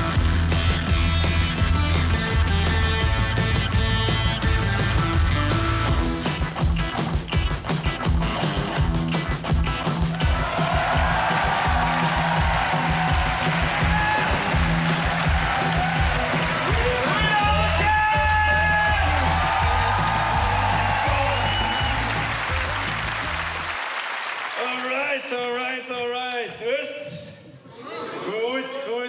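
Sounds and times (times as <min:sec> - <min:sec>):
music with pulsing bass beat: 0:00.0 - 0:23.6
audience applause: 0:10.1 - 0:25.6.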